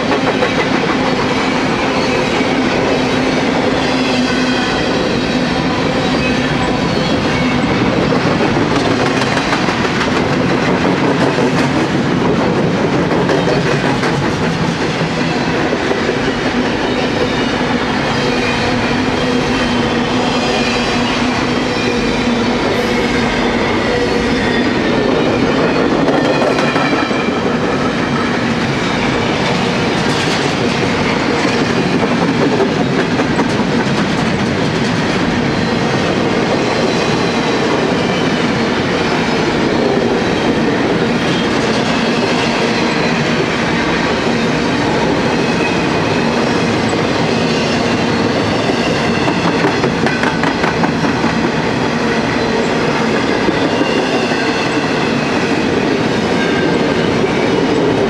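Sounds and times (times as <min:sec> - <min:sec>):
freight train wheels on rails: 0:00.0 - 0:58.0.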